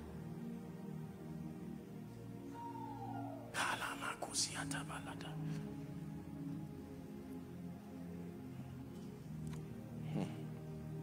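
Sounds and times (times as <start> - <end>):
soft background music: 0.0 - 11.0
person whispering: 3.5 - 5.6.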